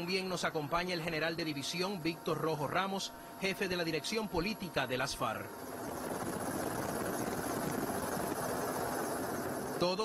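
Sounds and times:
helicopter engine and rotor: 0.0s - 10.0s.

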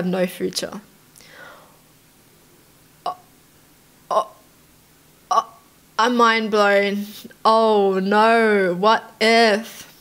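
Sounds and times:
woman's breathy exhale: 1.2s - 1.8s.

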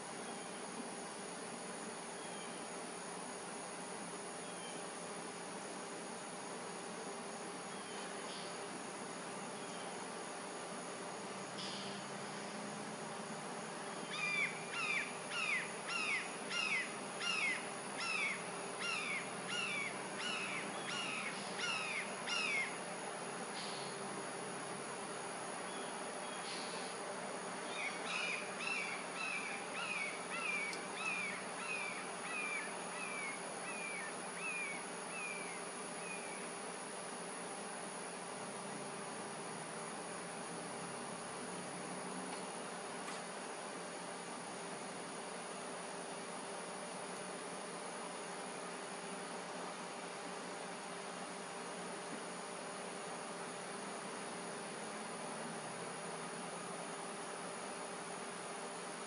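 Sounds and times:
high insect drone: 0.0s - 59.0s.

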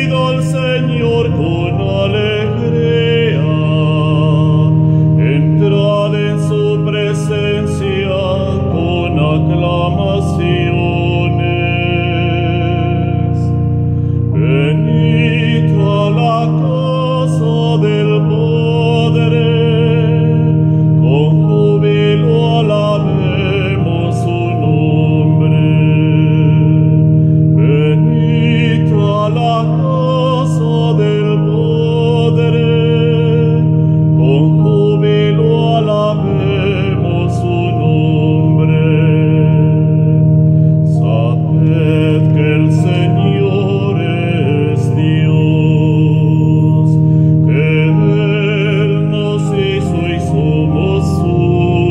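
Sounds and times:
keyboard held chords: 0.0s - 51.9s
man singing a hymn: 0.0s - 51.9s.

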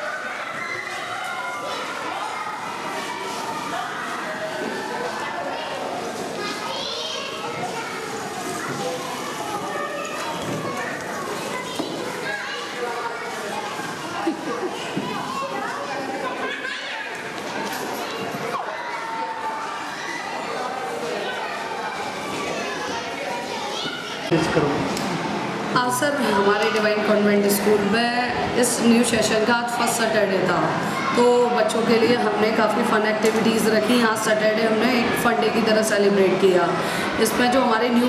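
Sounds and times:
children shouting and chattering: 0.0s - 38.0s.

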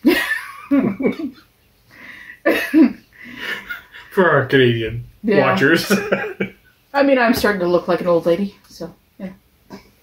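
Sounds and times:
coughing laugh: 0.0s - 1.4s, 5.6s - 6.5s
breathy laughter: 2.3s - 4.1s, 5.8s - 6.5s.

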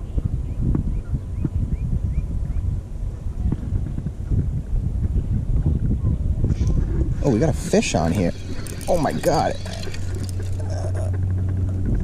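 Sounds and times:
wind rumble on microphone: 0.0s - 12.0s
spinning reel cranking: 7.7s - 11.1s.

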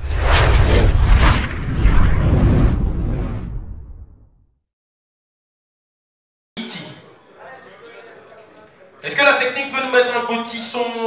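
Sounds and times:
deep rumbling boom: 0.0s - 4.4s
whoosh: 0.0s - 4.5s.

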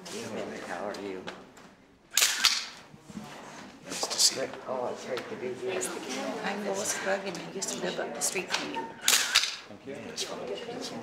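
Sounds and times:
camera shutter click and whirr: 2.1s - 2.8s, 9.0s - 9.6s.

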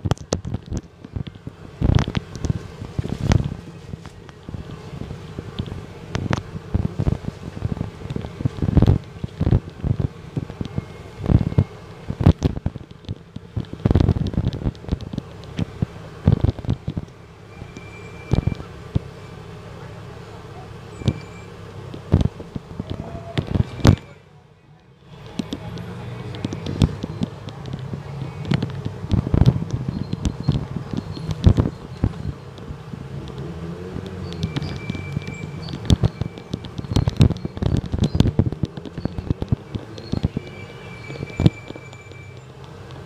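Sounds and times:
bus engine running: 0.0s - 43.0s
background voices: 21.9s - 41.4s
knocks and rattles: 25.2s - 43.0s.

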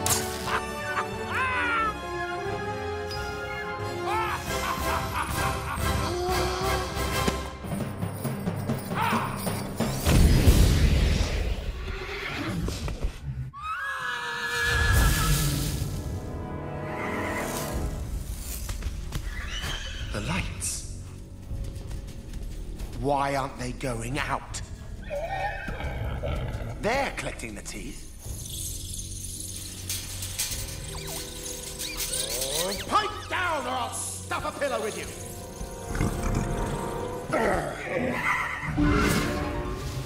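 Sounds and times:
film music: 0.0s - 11.8s, 14.7s - 40.0s
horse whinny: 11.8s - 12.8s, 13.6s - 15.5s, 19.2s - 20.3s, 25.0s - 26.7s
high squeaky chirps: 28.2s - 33.8s.

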